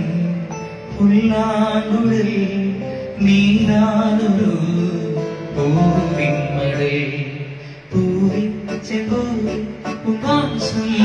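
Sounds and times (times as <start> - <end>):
electronic keyboard accompaniment: 0.0 - 11.0
man singing long notes: 0.0 - 11.0.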